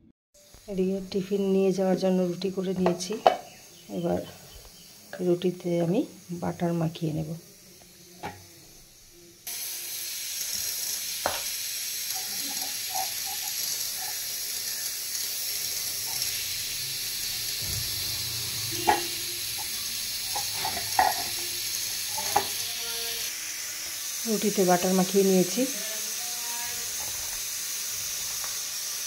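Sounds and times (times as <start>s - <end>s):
steady high hiss: 0.4s - 29.0s.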